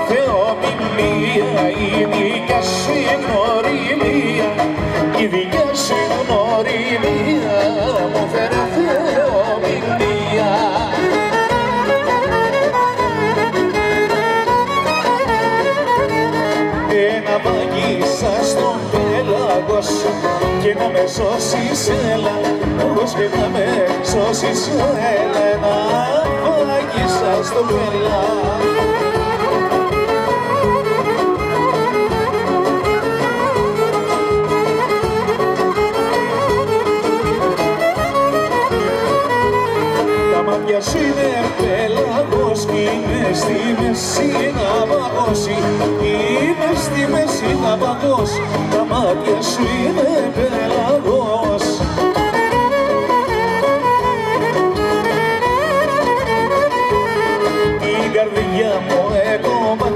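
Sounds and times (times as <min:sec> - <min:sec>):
folk band playing: 0:00.0 - 0:59.9
violin melody: 0:00.0 - 0:59.9
rhythm section beat: 0:00.3 - 0:59.9.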